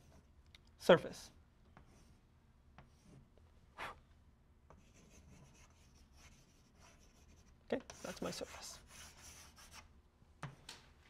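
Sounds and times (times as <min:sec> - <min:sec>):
chalk scratching on blackboard: 0:02.8 - 0:04.0, 0:04.7 - 0:09.9.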